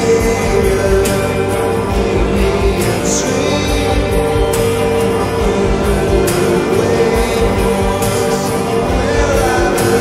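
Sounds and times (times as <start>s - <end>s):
person singing: 0.0s - 10.0s
sustained layered chords: 0.0s - 10.0s.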